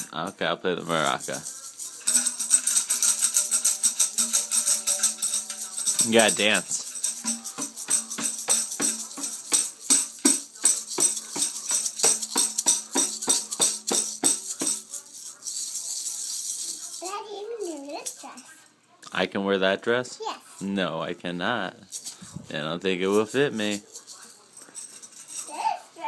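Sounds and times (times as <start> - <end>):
toy tambourine jingling: 0.8 - 18.6, 23.1 - 26.0.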